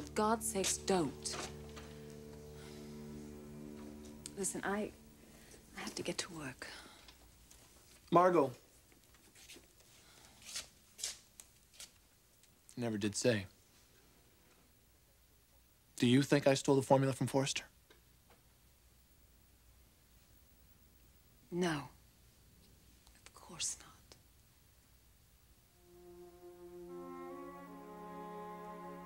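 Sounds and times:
faint rustling: 0.6s - 12.1s
person whispering: 23.1s - 24.2s.

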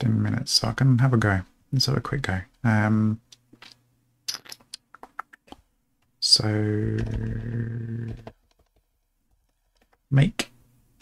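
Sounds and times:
man's drawn-out hesitation hum: 6.2s - 8.4s.

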